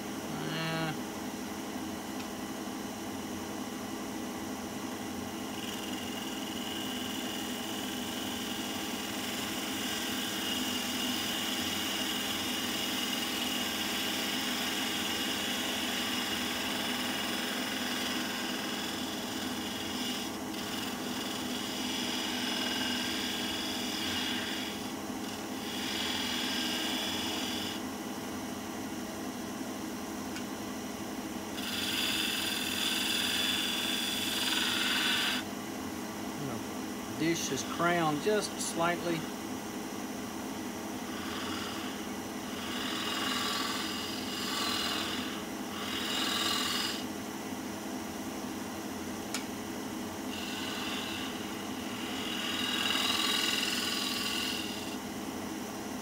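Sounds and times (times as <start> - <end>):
lathe motor hum: 4.9 - 27.8, 31.5 - 35.5, 36.4 - 39.3, 41.0 - 47.1, 50.3 - 55.1
gouge cutting wood hiss: 5.6 - 27.8, 31.6 - 35.5, 41.1 - 47.1, 50.3 - 55.0.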